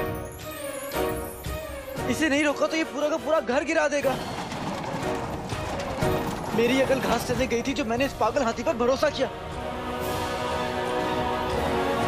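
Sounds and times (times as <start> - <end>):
background music: 0.0 - 12.0
house shaking rattle and rumble: 3.6 - 9.2.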